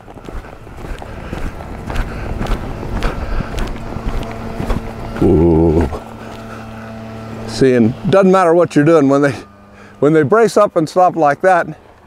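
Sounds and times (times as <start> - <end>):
wind rumble on microphone: 0.0 - 6.1
horse hoofbeats on sand: 0.0 - 6.5.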